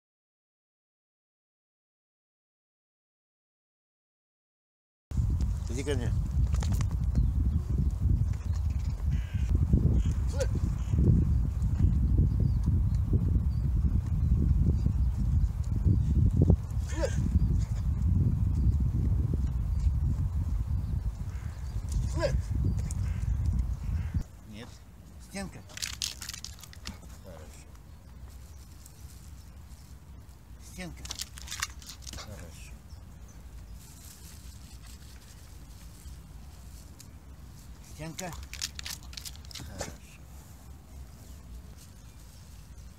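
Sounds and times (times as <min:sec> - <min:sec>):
steady low rumble: 0:05.1 - 0:25.2
wind buffeting microphone: 0:05.1 - 0:36.3
man calling: 0:10.2 - 0:10.6, 0:22.0 - 0:22.5, 0:24.4 - 0:25.9, 0:32.1 - 0:32.8, 0:39.6 - 0:40.2.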